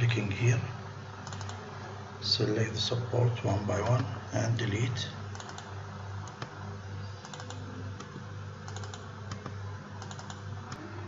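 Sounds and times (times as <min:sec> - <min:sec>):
steady low hum: 0:00.0 - 0:11.0
computer mouse clicks: 0:01.2 - 0:01.6, 0:05.3 - 0:06.5, 0:07.2 - 0:10.8.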